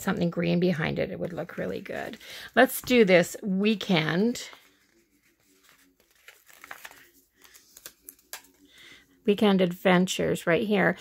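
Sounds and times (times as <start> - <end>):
paper sticker peeling: 4.8 - 8.6.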